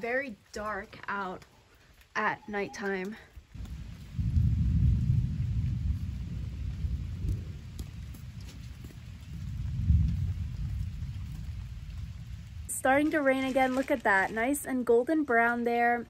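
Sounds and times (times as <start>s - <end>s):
distant thunder rumble: 3.5s - 13.3s.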